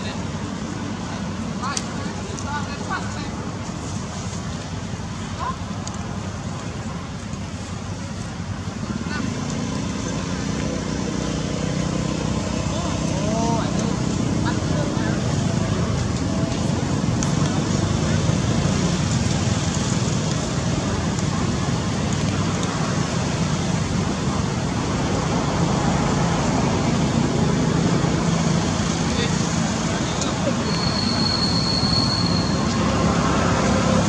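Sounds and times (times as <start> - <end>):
road traffic rumble: 0.0 - 34.0.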